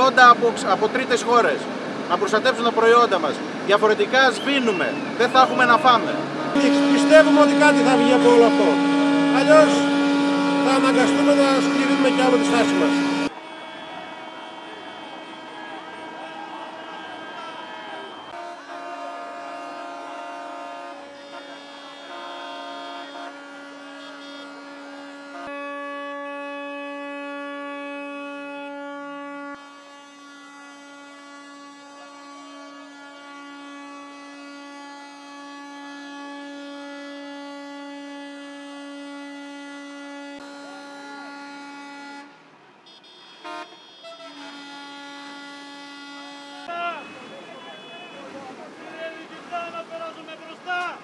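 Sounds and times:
crowd voices: 3.4 - 22.3, 46.2 - 51.0
tractor horn blaring: 4.0 - 51.0.

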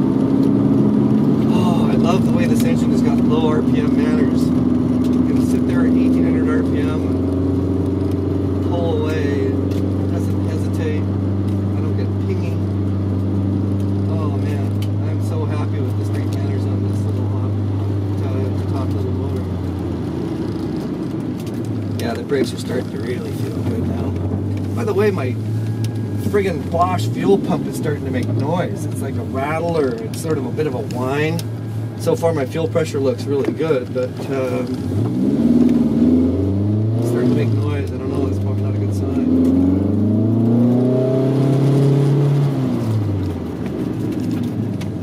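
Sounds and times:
car engine and exhaust droning: 0.0 - 45.0.

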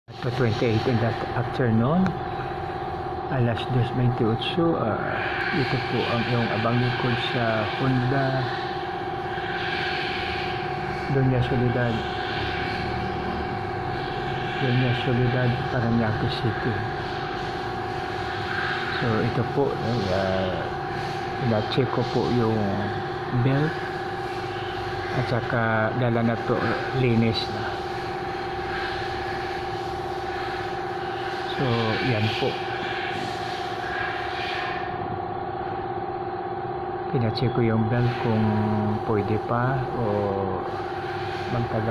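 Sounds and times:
mechanical drone: 0.0 - 41.9
steady machine hum: 0.0 - 41.9.

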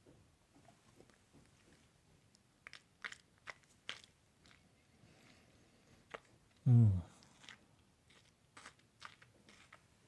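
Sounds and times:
lip smacks and tongue clicks: 2.3 - 4.7, 6.1 - 9.8.

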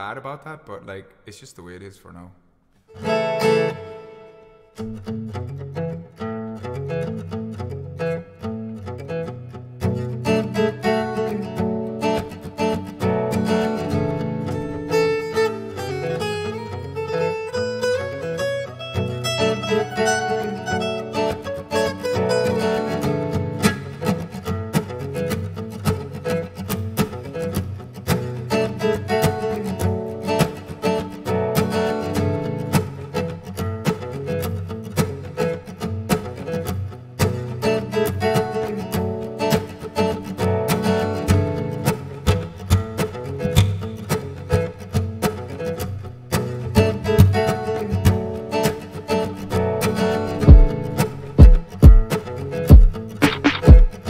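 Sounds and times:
acoustic guitar chords: 2.9 - 54.0
loud low thumps: 50.5 - 50.7, 51.4 - 52.0, 52.7 - 54.0.

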